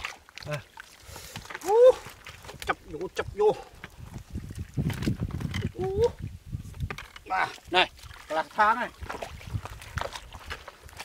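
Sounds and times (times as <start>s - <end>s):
hands squelching in wet mud: 7.3s - 11.0s.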